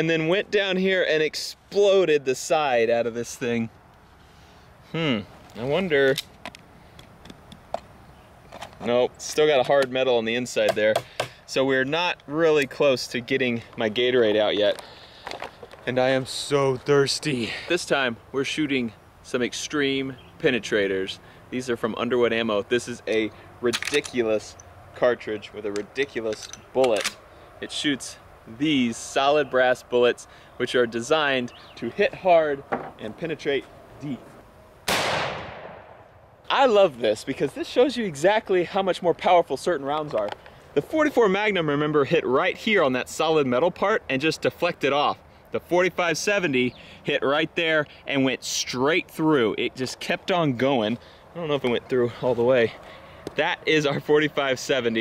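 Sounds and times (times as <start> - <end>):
rifle shot: 34.9 - 36.1.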